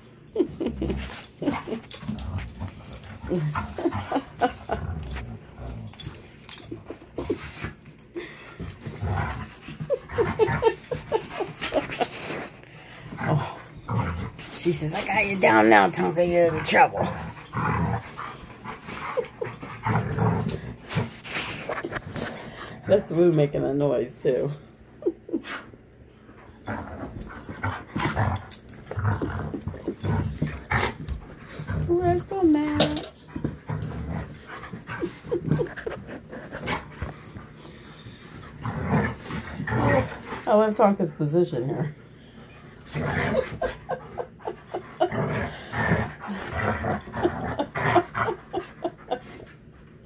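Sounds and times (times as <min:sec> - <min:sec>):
dogs play-wrestling noises: 0:00.0 - 0:50.0.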